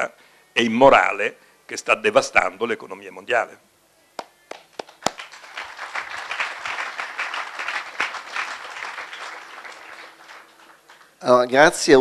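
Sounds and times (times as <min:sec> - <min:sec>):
audience applauding: 0:04.5 - 0:11.3.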